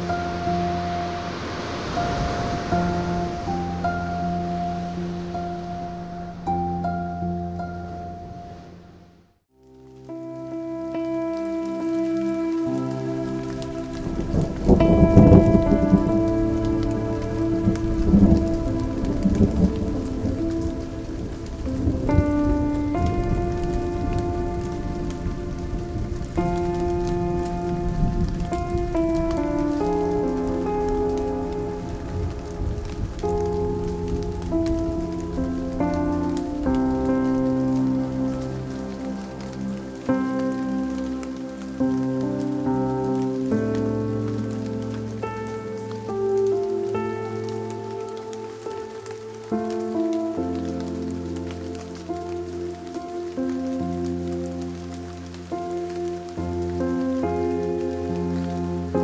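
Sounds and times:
low thunder rumble: 0.0s - 8.7s, 11.1s - 59.0s
slow music with held chords: 0.0s - 59.0s
steady rain: 0.0s - 59.0s.

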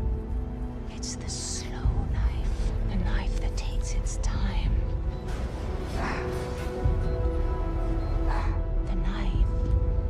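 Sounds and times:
woman whispering: 0.9s - 4.8s, 8.3s - 9.6s.

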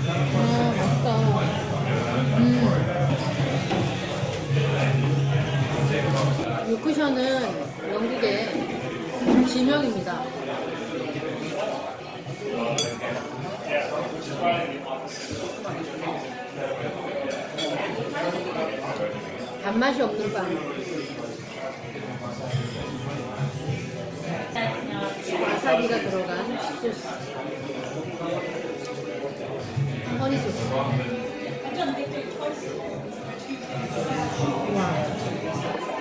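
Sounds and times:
background music: 0.0s - 13.7s, 21.4s - 36.0s.

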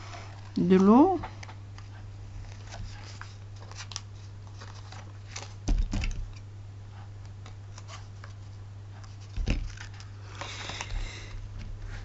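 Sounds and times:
paper and card rustling: 1.8s - 6.4s, 7.4s - 11.3s.

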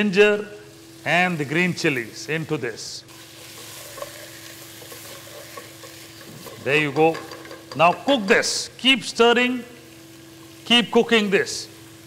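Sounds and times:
meat and onions sizzling: 0.0s - 12.0s
spatula scraping pot: 3.2s - 8.1s.

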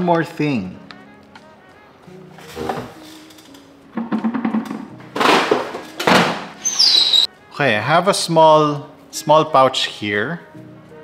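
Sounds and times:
soft music with held low notes: 0.0s - 11.0s.

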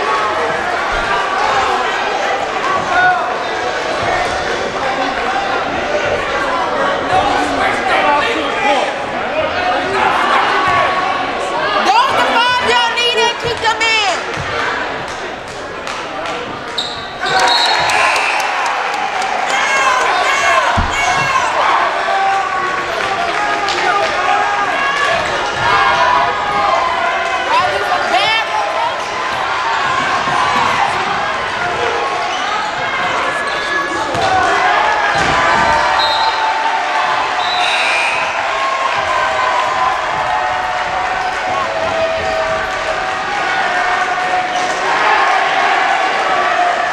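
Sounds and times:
crowd voices: 0.0s - 46.9s.

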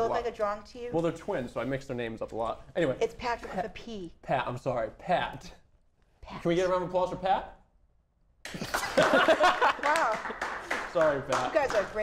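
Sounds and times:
audience applauding: 8.5s - 12.0s
audience laughing: 8.6s - 10.1s.

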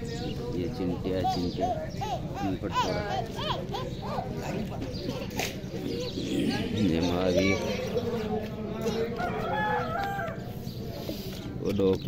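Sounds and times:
rooster crowing: 9.2s - 10.4s.

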